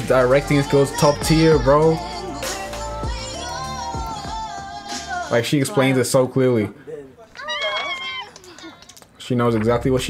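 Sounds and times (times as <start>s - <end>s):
woman's high-pitched exclamation: 7.4s - 8.7s.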